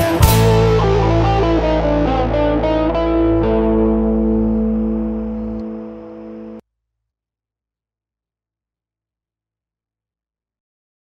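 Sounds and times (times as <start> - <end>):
guitar chord ringing out: 0.0 - 6.6.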